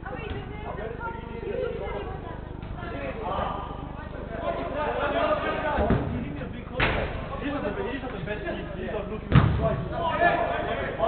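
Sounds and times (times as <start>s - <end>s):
loud deep football impact thud: 9.3s - 9.8s.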